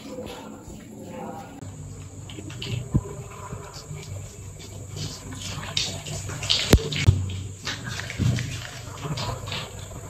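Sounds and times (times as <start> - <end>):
wet hands rubbing lather: 2.3 - 9.8.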